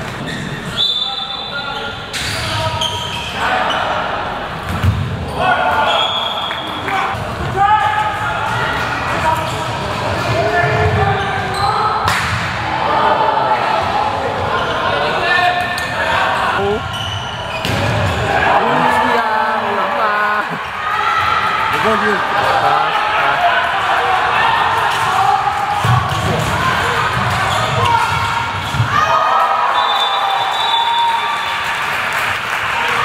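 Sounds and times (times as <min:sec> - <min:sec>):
echoing shouts in sports hall: 0:00.0 - 0:33.0
ball bouncing on hard court: 0:04.6 - 0:05.2, 0:17.5 - 0:18.2.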